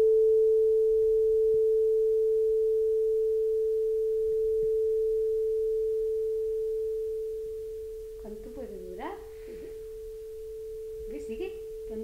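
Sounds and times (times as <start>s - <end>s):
tuning fork ringing tone: 0.0s - 8.6s, 9.3s - 12.0s.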